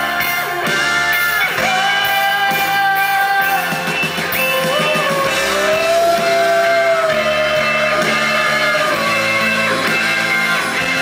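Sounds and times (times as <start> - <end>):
folk band playing: 0.0 - 11.0
guitar: 0.0 - 11.0.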